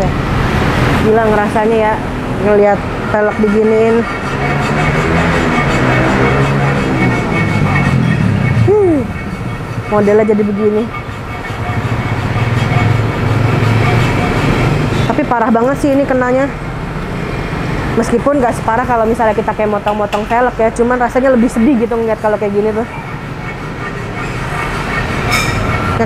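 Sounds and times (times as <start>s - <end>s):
vehicle engine idling: 0.0s - 26.0s
abrasive scraping on metal wheel: 0.6s - 16.6s, 17.2s - 26.0s
faint metallic squeal: 22.8s - 26.0s.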